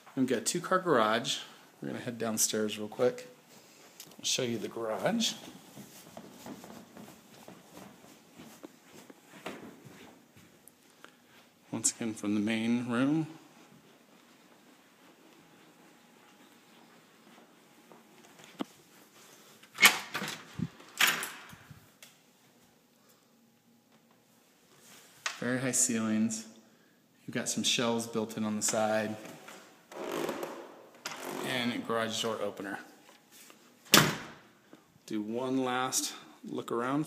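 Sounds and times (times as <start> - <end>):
door shutting with a bang: 33.9 - 34.4.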